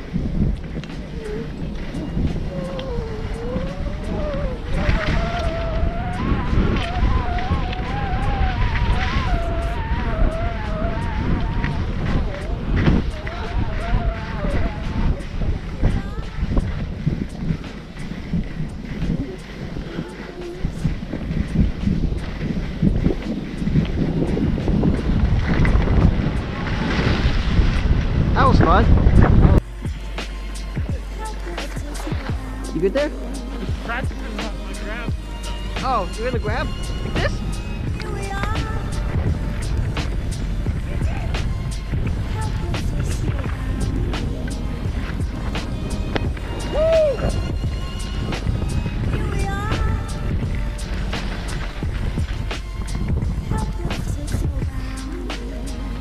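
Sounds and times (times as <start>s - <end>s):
wavering melody: 0.0s - 27.6s, 29.6s - 56.0s
skis running over snow: 0.0s - 56.0s
wind on microphone: 0.0s - 56.0s.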